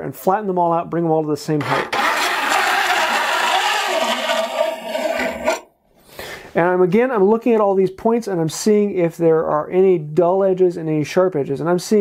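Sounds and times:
metal file scraping saw teeth: 1.6s - 5.7s.

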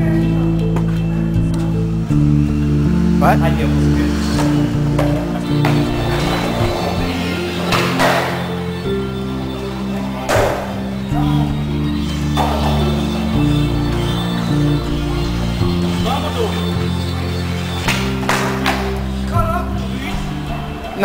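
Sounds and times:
background music with low notes: 0.0s - 21.0s.

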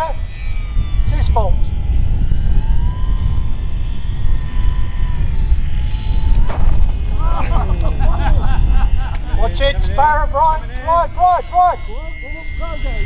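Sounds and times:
model plane motor whining: 0.0s - 13.0s
plane hitting the ground: 0.0s - 13.0s
wind buffeting microphone: 0.0s - 13.0s
voices: 1.0s - 1.7s, 6.5s - 13.0s.

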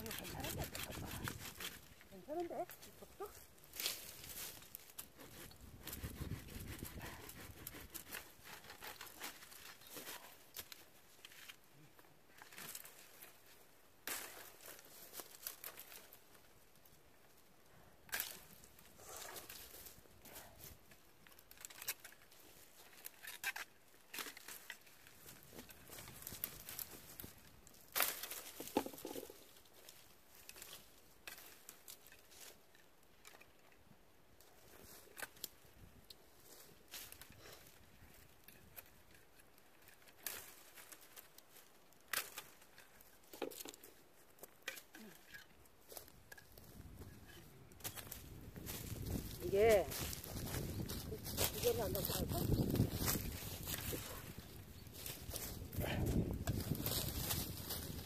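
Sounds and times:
pruning saw cutting branches: 0.0s - 2.8s, 3.8s - 10.2s
twigs cracking and snapping: 18.0s - 20.0s, 20.9s - 33.7s, 35.0s - 46.8s, 47.8s - 58.0s.

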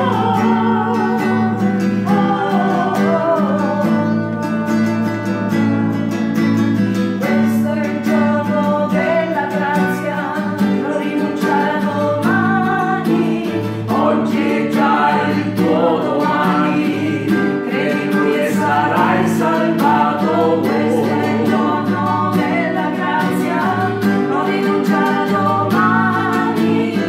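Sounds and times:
group singing a worship song: 0.0s - 6.2s, 7.2s - 27.0s
strummed acoustic guitar: 0.0s - 27.0s.

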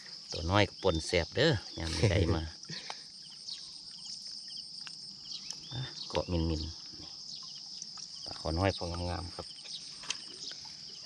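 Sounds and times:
high-pitched insect chorus: 0.0s - 11.0s.

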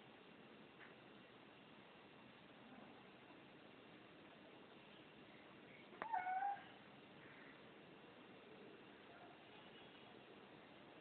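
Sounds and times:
cat meowing: 6.0s - 6.8s.

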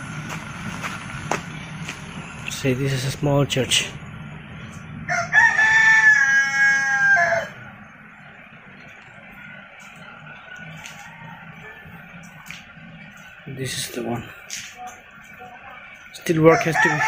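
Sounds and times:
rooster crowing: 5.0s - 7.7s, 10.6s - 12.3s, 16.4s - 17.0s.

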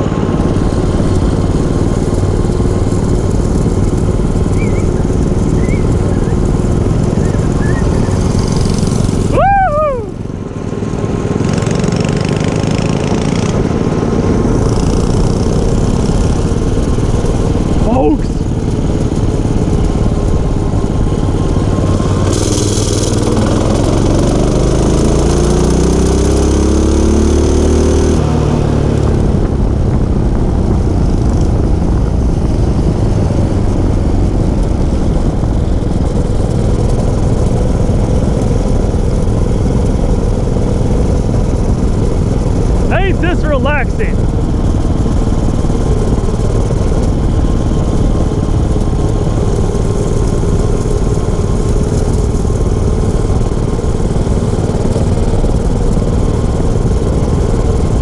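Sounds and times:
minibike engine running: 0.0s - 26.8s, 28.7s - 58.0s
wind rumble on microphone: 28.3s - 42.9s.

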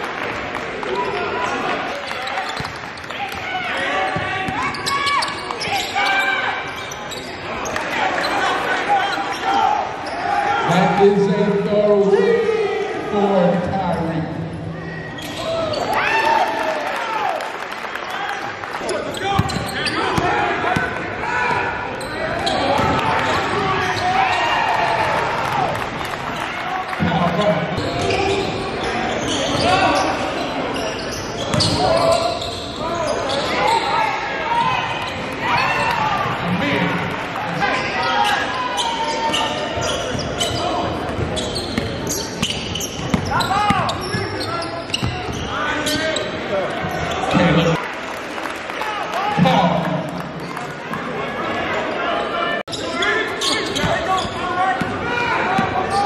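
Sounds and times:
people calling out in a gym: 1.0s - 17.4s, 43.2s - 46.2s, 51.6s - 56.0s.

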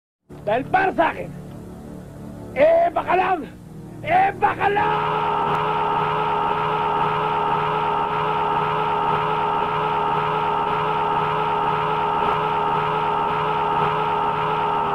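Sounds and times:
man's long drawn-out shout: 2.7s - 14.9s.

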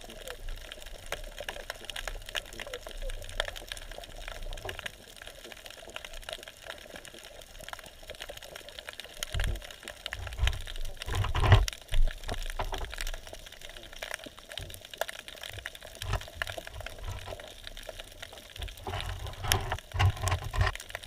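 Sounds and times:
rumbling water surges: 0.0s - 21.0s
underwater clicks and crackles: 0.0s - 21.0s.

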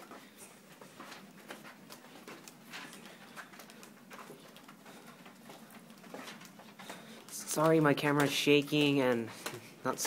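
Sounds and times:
footsteps on carpet: 0.0s - 9.8s.

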